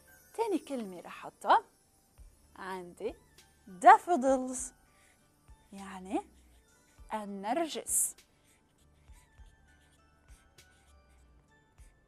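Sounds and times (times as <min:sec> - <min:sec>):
soft background music: 0:00.0 - 0:12.0
marker pen scratching on card: 0:08.2 - 0:11.3.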